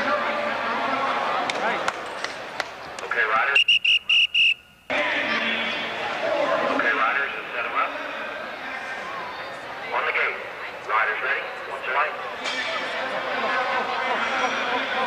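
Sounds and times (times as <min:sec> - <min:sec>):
indoor crowd chatter: 0:00.0 - 0:15.0.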